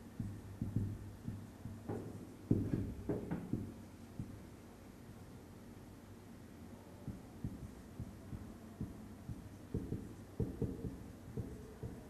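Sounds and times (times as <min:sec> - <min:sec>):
marker pen tapping on whiteboard: 0:00.0 - 0:04.5, 0:07.1 - 0:12.0.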